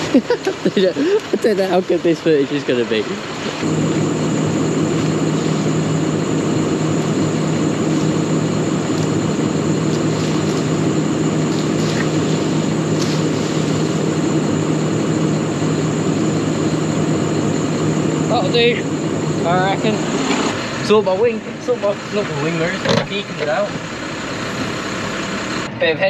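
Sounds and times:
tractor diesel engine idling: 0:00.0 - 0:26.0.

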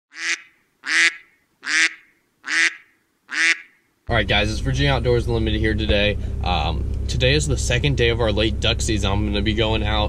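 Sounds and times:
waterfowl calls: 0:00.1 - 0:03.9.

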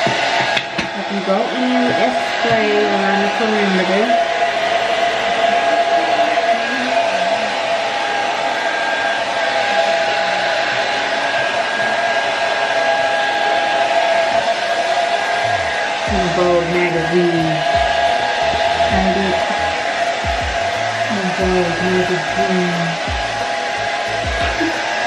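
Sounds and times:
hair dryer running: 0:00.0 - 0:25.0.

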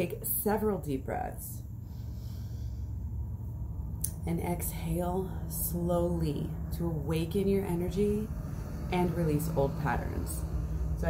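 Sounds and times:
truck traffic rumble: 0:00.0 - 0:11.0
faint deep breath: 0:01.7 - 0:03.4, 0:08.3 - 0:11.0.

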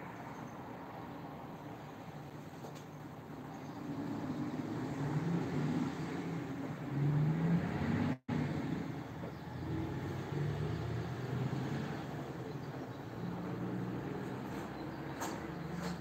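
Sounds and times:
vehicle engine hum passing: 0:00.0 - 0:16.0.

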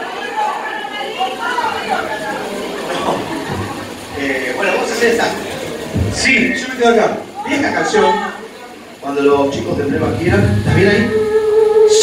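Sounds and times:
several voices talking: 0:00.0 - 0:11.4
audience chatter: 0:00.0 - 0:12.0.

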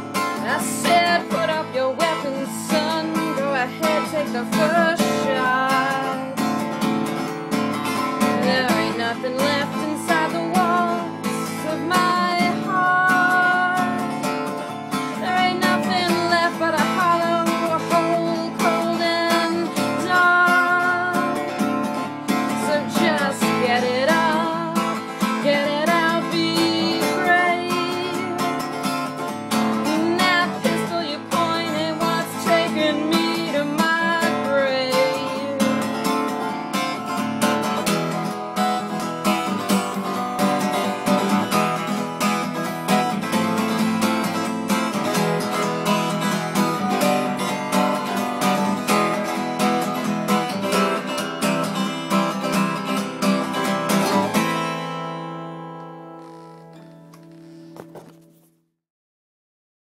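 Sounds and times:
acoustic guitar strumming: 0:00.0 - 0:58.5
woman singing: 0:00.2 - 0:06.7, 0:08.0 - 0:36.3.

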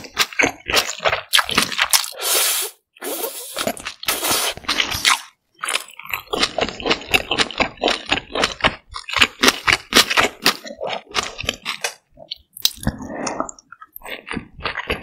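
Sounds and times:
noodles slurped: 0:00.0 - 0:08.2
crisp chewing: 0:03.4 - 0:15.0.

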